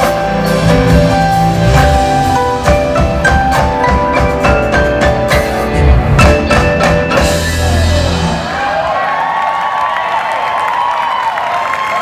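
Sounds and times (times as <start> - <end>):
jazz band playing: 0.0 - 8.8
audience cheering and applauding: 7.2 - 12.0.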